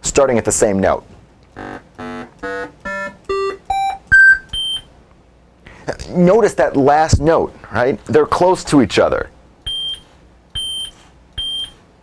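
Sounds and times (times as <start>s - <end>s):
synthesized notes climbing: 1.5s - 4.8s.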